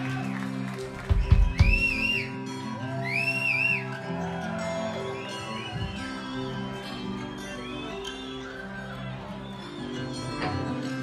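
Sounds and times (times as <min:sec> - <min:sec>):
high whistle-like notes: 0:01.3 - 0:04.0.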